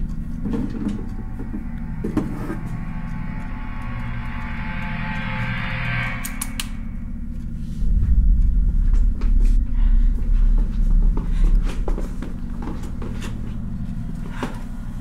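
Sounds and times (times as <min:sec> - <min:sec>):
loud low rumble: 0:00.0 - 0:15.0
low droning hum: 0:00.0 - 0:15.0.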